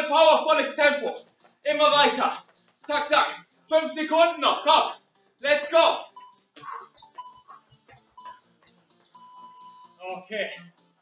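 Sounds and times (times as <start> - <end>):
interval timer beeps: 6.0 - 10.0.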